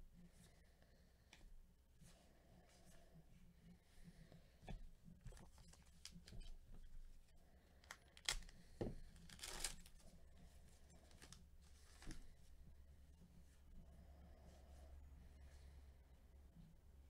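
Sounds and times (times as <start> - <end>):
plastic wrapper rustling and tearing: 7.8 - 10.1, 10.9 - 12.2
wrapper sharp snap: 7.9 - 8.6, 9.2 - 9.9.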